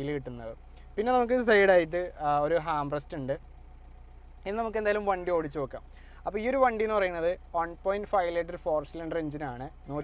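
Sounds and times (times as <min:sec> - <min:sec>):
man talking: 0:00.0 - 0:03.4, 0:04.4 - 0:10.0
steady low hum: 0:00.0 - 0:10.0.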